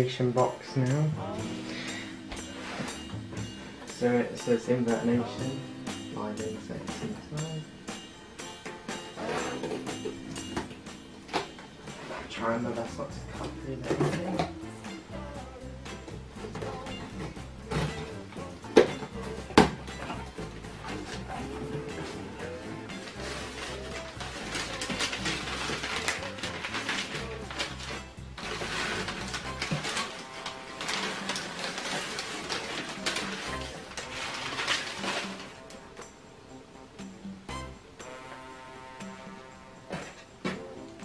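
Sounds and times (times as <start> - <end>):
background music: 0.0 - 41.0
crumpled newspaper rustling: 20.7 - 35.8.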